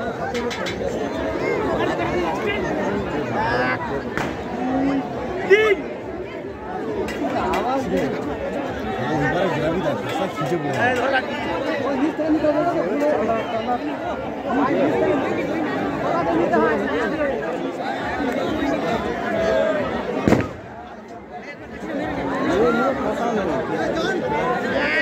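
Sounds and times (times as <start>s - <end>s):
crowd chatter: 0.0s - 25.0s.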